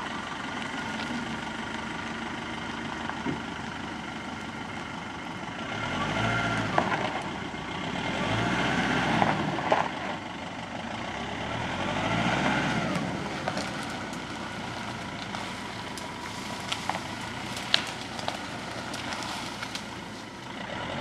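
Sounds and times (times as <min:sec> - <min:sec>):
diesel engine revving under load: 0:00.0 - 0:21.0.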